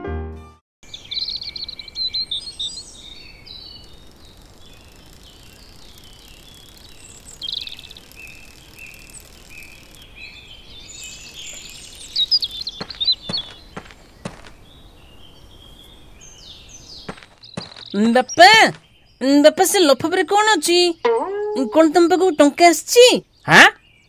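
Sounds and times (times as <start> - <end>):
small birds chirping: 0.8 - 24.0.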